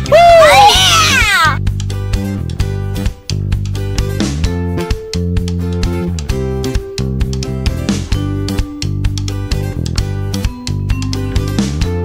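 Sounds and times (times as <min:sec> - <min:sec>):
person whooping excitedly: 0:00.0 - 0:01.6
background music: 0:00.0 - 0:12.0.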